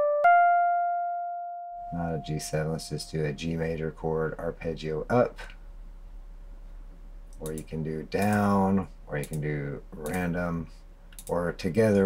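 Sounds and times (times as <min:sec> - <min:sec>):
electric piano notes: 0:00.0 - 0:03.5.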